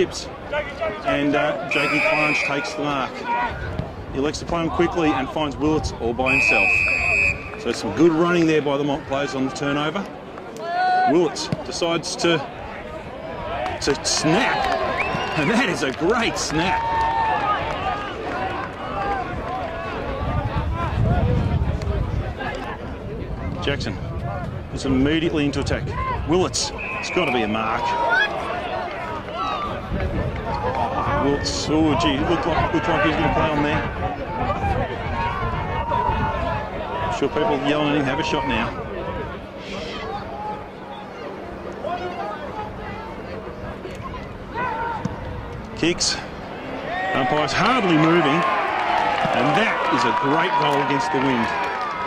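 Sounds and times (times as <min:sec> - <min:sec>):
people shouting and cheering: 0:00.0 - 0:03.8, 0:10.5 - 0:11.6, 0:12.5 - 0:22.8, 0:25.8 - 0:45.3, 0:45.9 - 0:52.0
wind rumbling on microphone: 0:18.9 - 0:26.7, 0:29.5 - 0:37.5.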